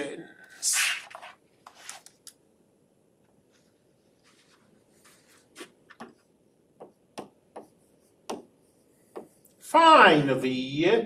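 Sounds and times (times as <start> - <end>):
faint soft rustle: 3.4 - 6.3.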